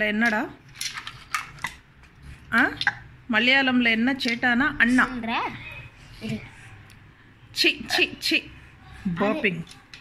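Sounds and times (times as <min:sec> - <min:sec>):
plastic toy pieces clattering on tiles: 0:00.2 - 0:01.8.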